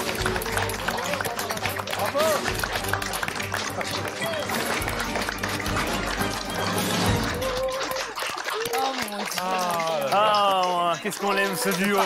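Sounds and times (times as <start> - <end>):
audience applause: 0.0 - 12.0
people whooping: 7.1 - 10.7.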